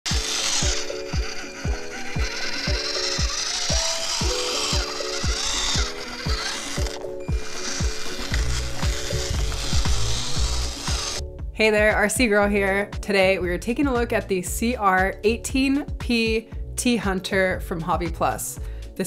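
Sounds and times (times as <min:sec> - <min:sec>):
deep bass line: 0:09.3 - 0:15.8.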